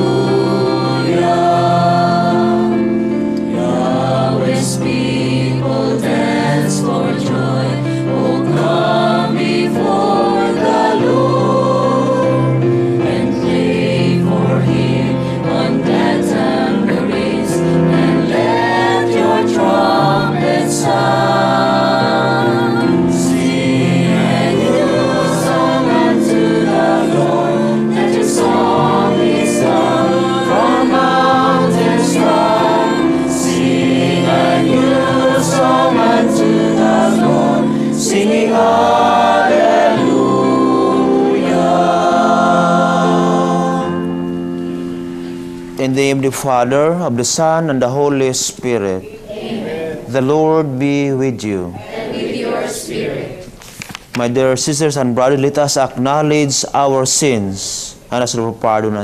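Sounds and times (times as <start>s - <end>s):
choir singing a hymn: 0.0s - 53.6s.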